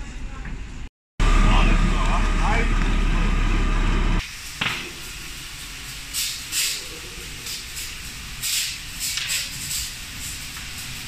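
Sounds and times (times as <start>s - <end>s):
fire engine pump rumbling: 1.2s - 11.0s.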